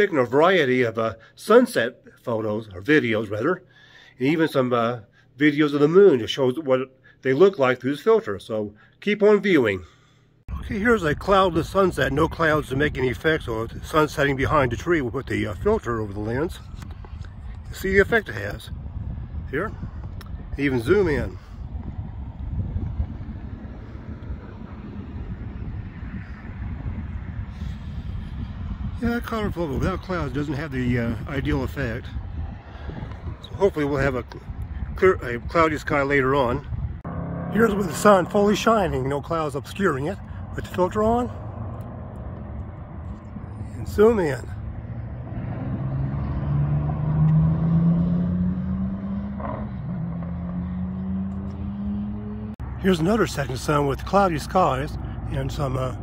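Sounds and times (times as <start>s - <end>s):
wind buffeting microphone: 10.5s - 53.2s.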